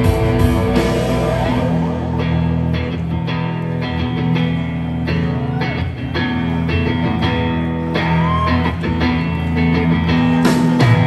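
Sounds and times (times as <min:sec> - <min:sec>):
rock band playing instrumental: 0:00.0 - 0:11.0
sliding guitar line: 0:00.0 - 0:11.0.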